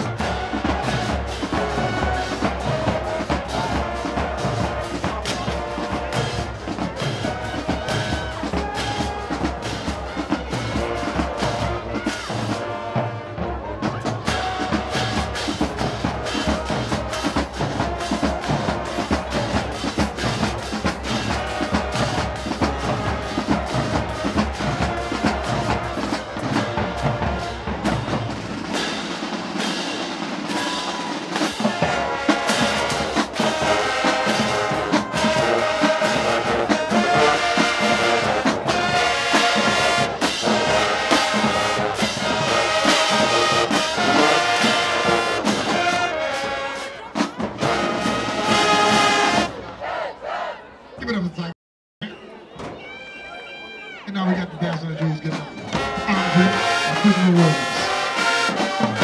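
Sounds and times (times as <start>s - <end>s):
drumline beat: 0.0s - 50.0s, 54.1s - 59.0s
brass chords: 0.0s - 50.5s, 55.5s - 59.0s
marching band playing: 0.0s - 51.3s, 52.1s - 59.0s.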